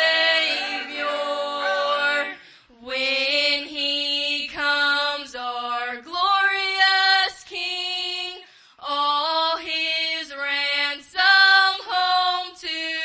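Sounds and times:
woman singing unaccompanied: 0.0 - 13.0.

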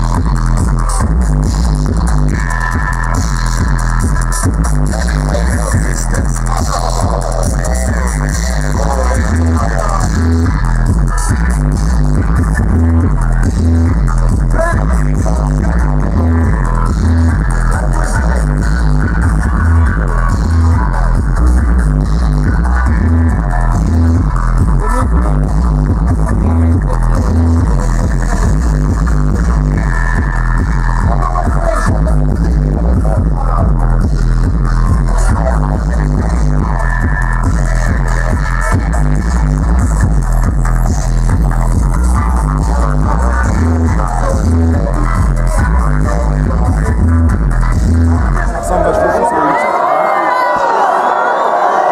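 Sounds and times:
heavy bass line pulsing: 0.0 - 49.5
loud music through sound system: 0.0 - 51.9.

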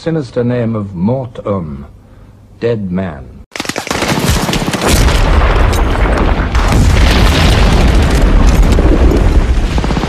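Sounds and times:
rapid gunfire: 3.5 - 5.2
rumble of explosions: 4.3 - 10.0.

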